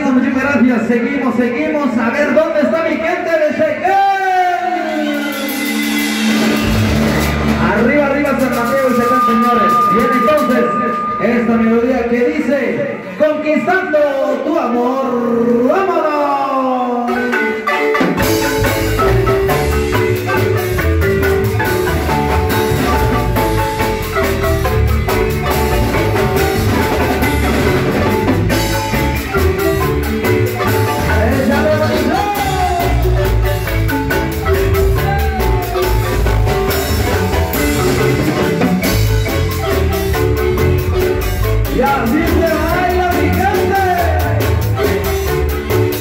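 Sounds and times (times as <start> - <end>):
marimba struck with mallets: 5.3 - 12.5, 17.1 - 46.0
low bass notes: 6.0 - 13.0, 18.2 - 46.0.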